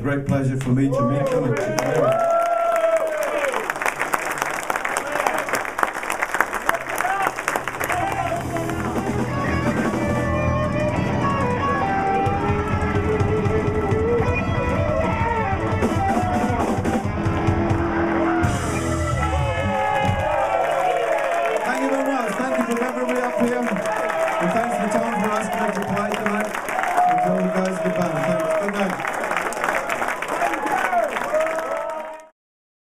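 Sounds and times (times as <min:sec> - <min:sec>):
audience applause and cheering: 0:00.7 - 0:32.4
drums: 0:07.5 - 0:28.6
keyboard: 0:07.6 - 0:29.3
electric guitars: 0:07.8 - 0:21.6
electric bass: 0:07.9 - 0:20.5.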